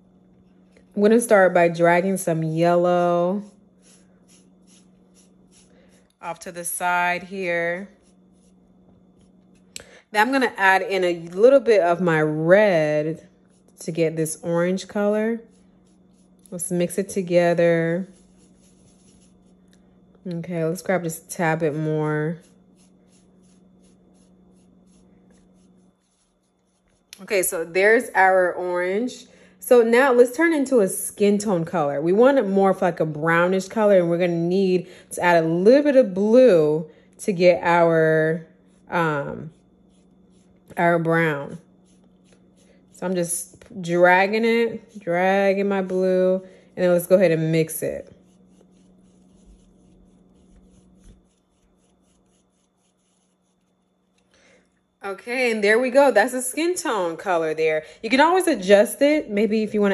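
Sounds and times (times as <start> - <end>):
paintbrush swishing on plate: 1.7 - 9.7, 12.8 - 19.8, 21.2 - 27.5, 38.7 - 45.2, 46.8 - 53.8.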